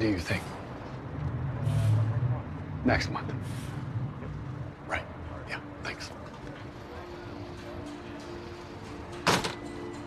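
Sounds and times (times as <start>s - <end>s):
vehicle passing by: 0.4s - 4.8s.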